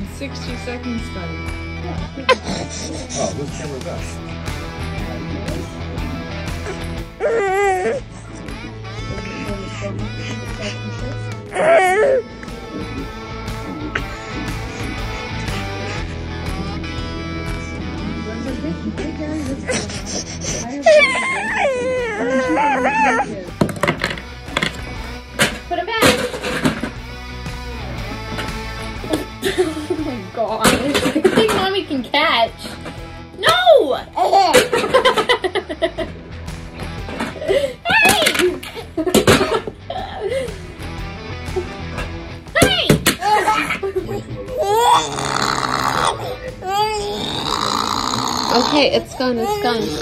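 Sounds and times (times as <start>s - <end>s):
background music: 0.0s - 50.0s.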